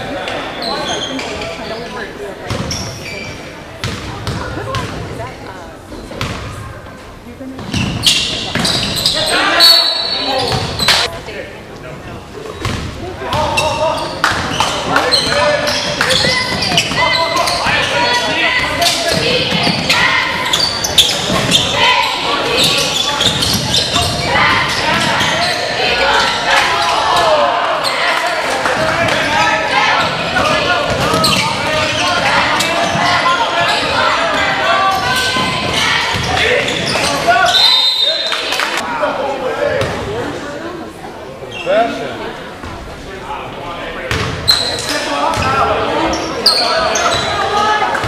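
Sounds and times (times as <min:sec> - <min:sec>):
spectators' voices and shouts: 0:00.0 - 0:48.0
referee's whistle: 0:08.0 - 0:11.0, 0:37.4 - 0:38.4.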